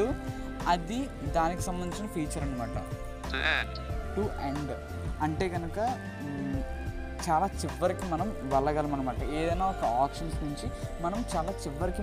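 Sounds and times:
background music: 0.0 - 12.0
fast text-to-speech voice: 3.3 - 3.8.

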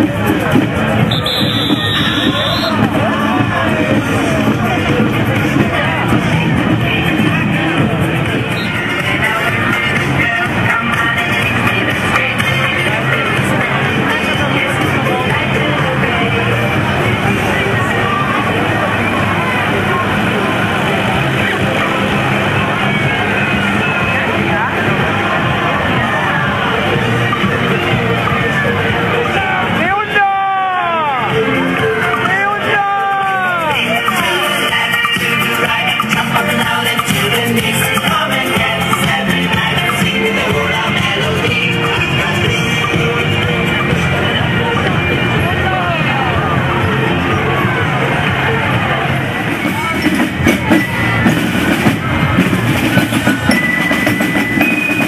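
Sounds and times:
crowd voices: 0.0 - 55.0
tractor diesel engine passing: 0.2 - 29.8
parade music: 0.2 - 55.0.

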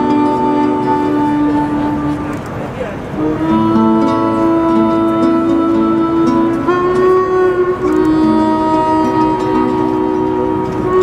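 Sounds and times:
harmonica chords: 0.0 - 2.5, 3.1 - 11.0
cello: 0.0 - 11.0
nylon-string guitar: 0.0 - 11.0.

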